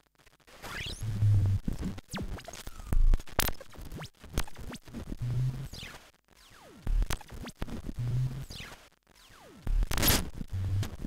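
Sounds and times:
glitchy electronic clicks and crackles: 0.0s - 11.0s.

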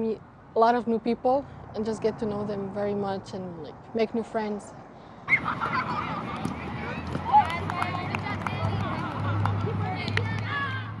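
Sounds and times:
girls laughing: 5.3s - 6.4s.

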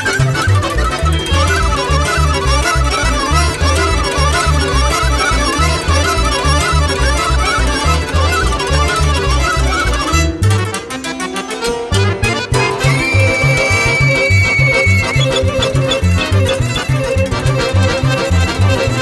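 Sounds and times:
violin and accordion melody: 0.0s - 19.0s
pulsing bass and chord beat: 12.9s - 18.1s.

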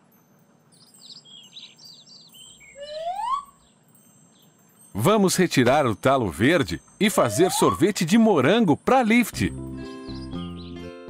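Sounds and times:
cartoon bird chirps: 2.7s - 3.6s, 7.0s - 8.4s
rising whistle glide: 2.8s - 3.6s, 7.1s - 8.2s.

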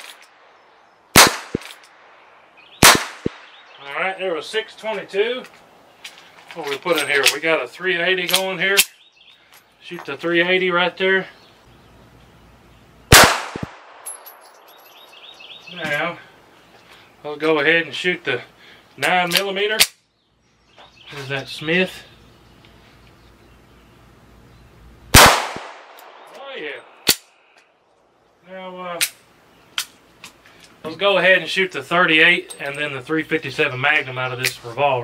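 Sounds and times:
pistol shot: 1.1s - 1.9s, 2.8s - 3.7s, 13.1s - 14.1s, 25.1s - 26.3s.

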